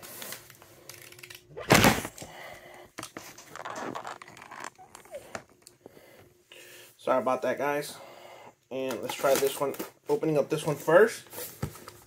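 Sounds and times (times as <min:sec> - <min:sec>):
tape and cardboard rustling: 0:03.0 - 0:05.6, 0:08.9 - 0:10.0.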